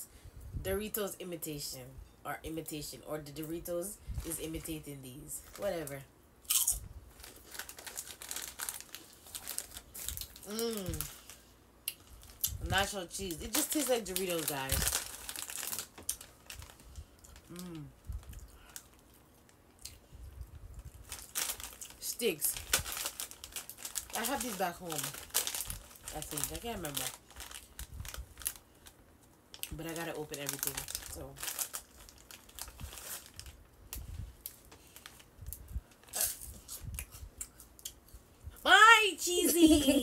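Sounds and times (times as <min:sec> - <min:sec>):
plastic snack bag crinkling: 0:05.4 - 0:19.2, 0:21.0 - 0:29.0, 0:29.6 - 0:37.0.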